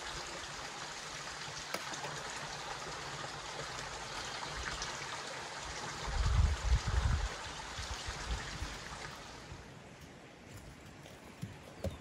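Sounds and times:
wind buffets on microphone: 6.0 - 8.8.

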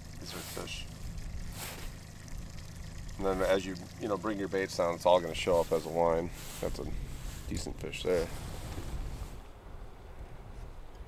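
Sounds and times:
boat motor humming: 0.0 - 9.8.

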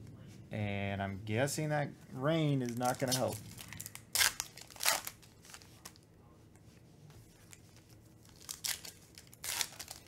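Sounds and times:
foil card pack tearing: 2.6 - 6.0, 8.3 - 10.0.

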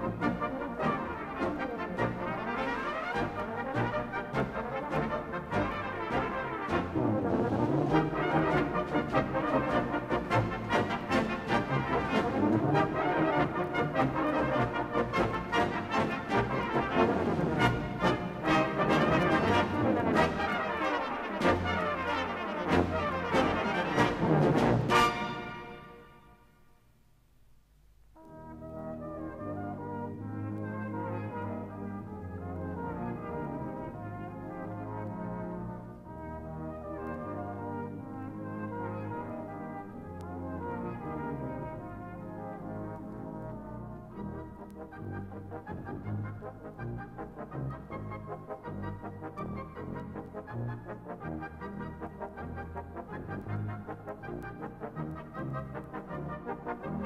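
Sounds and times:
brass band playing: 0.0 - 26.4, 28.3 - 57.0.

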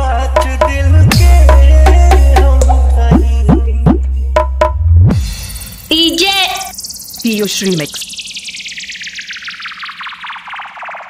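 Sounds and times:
stuttering noise sweep falling: 5.5 - 11.0.

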